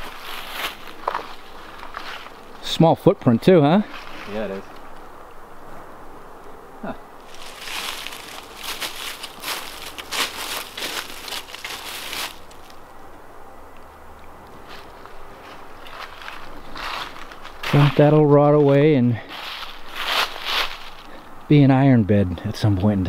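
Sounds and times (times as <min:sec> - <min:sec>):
footsteps crunching dry leaves: 0:00.0 - 0:02.6, 0:03.8 - 0:04.7, 0:07.2 - 0:12.8, 0:14.6 - 0:21.2.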